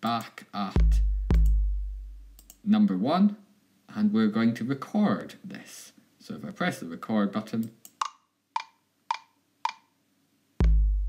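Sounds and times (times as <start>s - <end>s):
metronome clicks: 0.2s - 1.6s, 2.3s - 2.6s, 7.8s - 9.9s.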